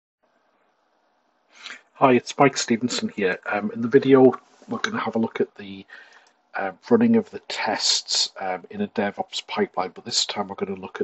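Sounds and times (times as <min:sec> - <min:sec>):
faint microphone hiss: 0:00.2 - 0:11.0
man speaking: 0:01.6 - 0:11.0.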